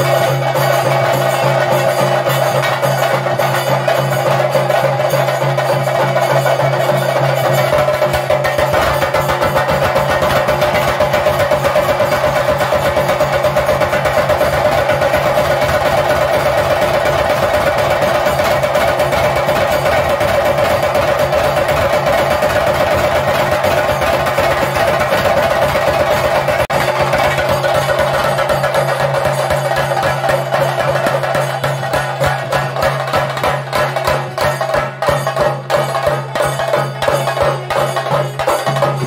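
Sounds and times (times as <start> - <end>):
drums beaten fast with sticks: 0.0 - 39.0.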